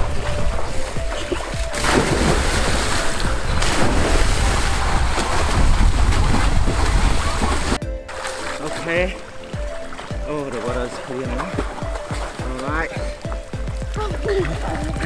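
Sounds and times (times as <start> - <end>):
water splashing: 0.0 - 15.0.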